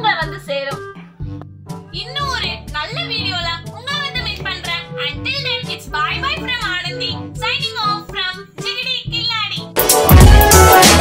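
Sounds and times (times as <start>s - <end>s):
background music: 0.0s - 11.0s
girl's voice: 1.9s - 9.7s.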